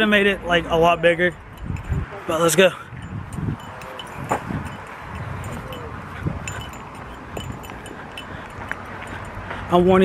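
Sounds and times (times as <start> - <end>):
metallic tinkling: 1.0 - 9.5
wind rumble on microphone: 1.3 - 2.2, 2.8 - 10.0.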